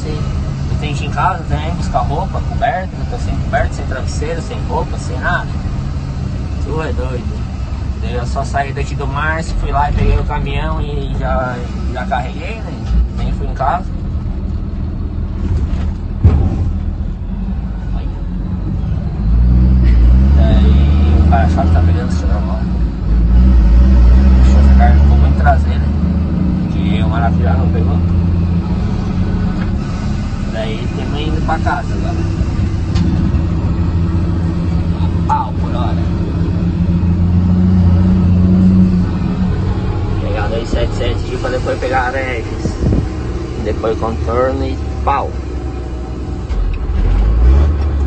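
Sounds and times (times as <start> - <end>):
truck engine droning: 0.0 - 48.0.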